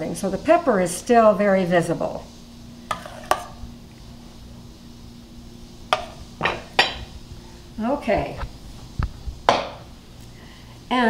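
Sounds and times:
faint steady hum: 0.0s - 11.0s
ceramic bowls clinking: 6.0s - 7.1s
dishes knocking: 6.0s - 7.1s, 9.5s - 9.8s.

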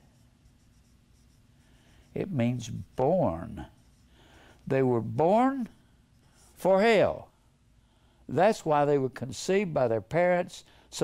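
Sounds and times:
marker writing on whiteboard: 0.0s - 4.1s.

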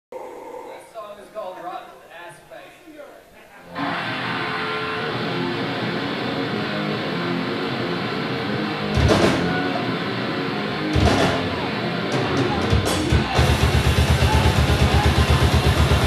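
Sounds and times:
rock band with electric guitars: 3.7s - 16.0s
loud band hits: 8.9s - 9.9s, 10.9s - 16.0s.

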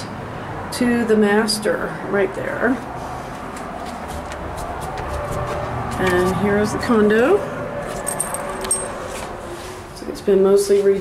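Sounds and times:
keys jangling: 7.8s - 9.3s.

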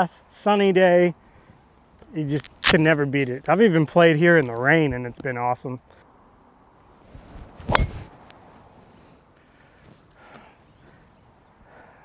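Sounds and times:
golf club striking ball: 7.7s - 8.1s.

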